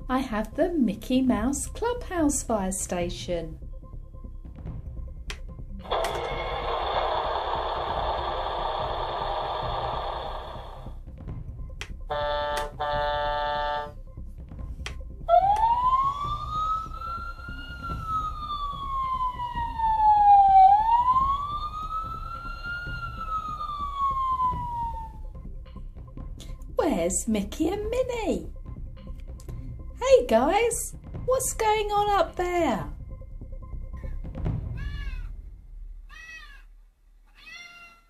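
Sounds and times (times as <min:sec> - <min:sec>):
toy noisy rush sound: 0:05.9 - 0:10.8
toy siren wailing: 0:05.9 - 0:10.8, 0:12.1 - 0:13.9, 0:15.3 - 0:25.2
toy horn blasts: 0:12.1 - 0:13.9.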